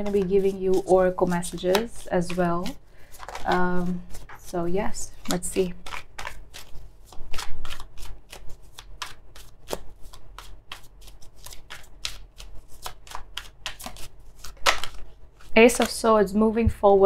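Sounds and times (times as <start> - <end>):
cards being shuffled: 0.0 - 16.1.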